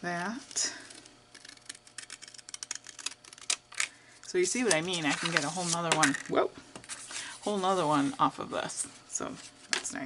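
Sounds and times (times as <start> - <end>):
scissors snipping paper: 1.3 - 3.6.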